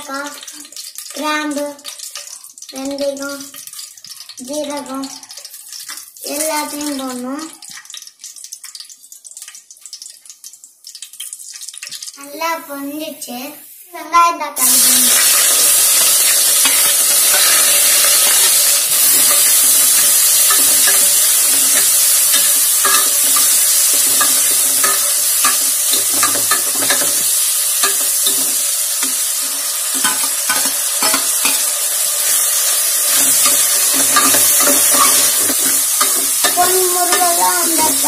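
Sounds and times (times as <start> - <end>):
onions sizzling in hot oil: 0.0 - 38.0
ladle scraping pot: 20.4 - 31.7, 33.1 - 36.7.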